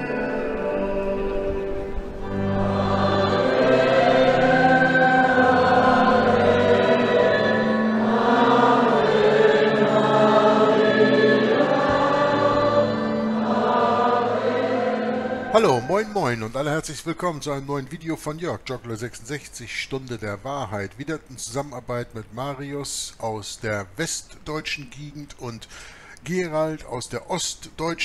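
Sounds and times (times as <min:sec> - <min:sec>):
choir singing sacred music: 0:00.0 - 0:16.8.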